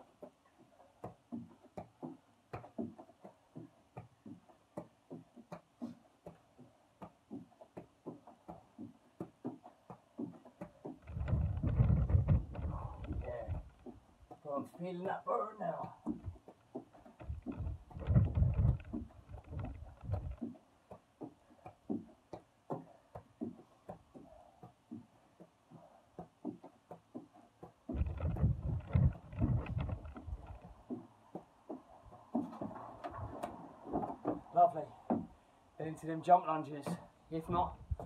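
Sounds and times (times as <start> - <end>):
knocks and taps on wooden deck: 0.0 - 15.0, 15.8 - 35.4
wind rumble on microphone: 11.0 - 13.8, 17.2 - 20.4, 27.9 - 30.8, 32.7 - 34.0, 37.5 - 38.0.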